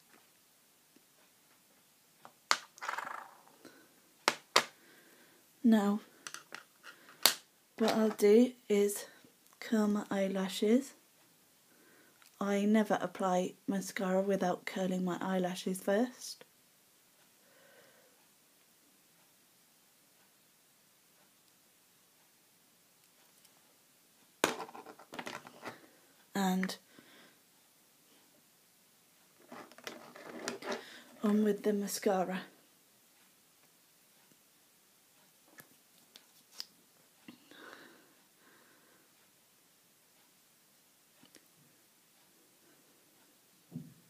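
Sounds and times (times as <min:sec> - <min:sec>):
metal object knocking on hard surface: 0:24.4 - 0:25.4.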